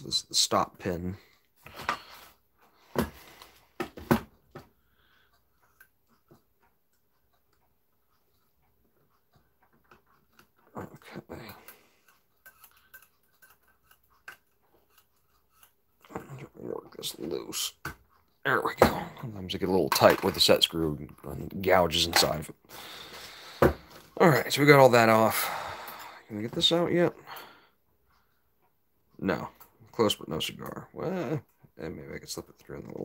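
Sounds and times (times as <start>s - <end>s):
metallic clicks of screwdriver on clock: 5.3s - 15.8s.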